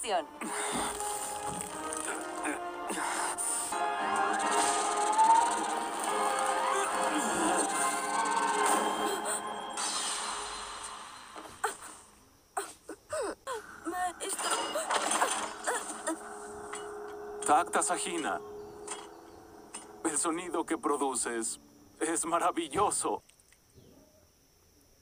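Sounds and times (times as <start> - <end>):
dramatic soundtrack music: 0.0 - 11.0, 16.2 - 20.4
energy blast effects: 9.6 - 11.4.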